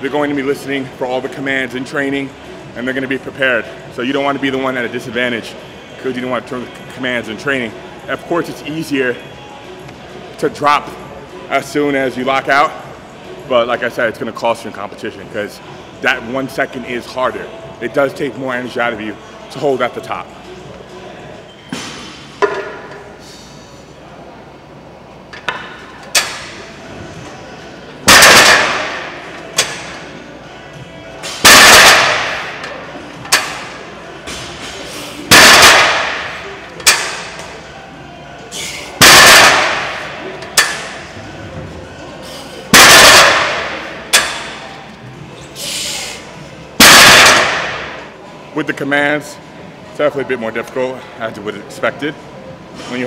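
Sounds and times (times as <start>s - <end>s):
loud bursts: 31.4s - 32.4s, 39.0s - 40.0s, 42.7s - 43.7s, 46.8s - 47.8s.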